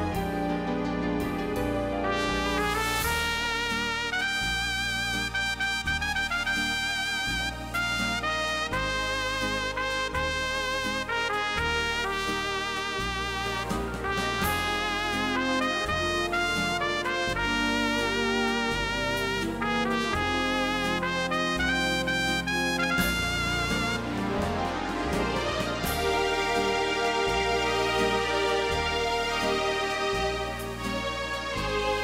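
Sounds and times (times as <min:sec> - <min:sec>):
home organ playing a tune: 0:00.0 - 0:31.6.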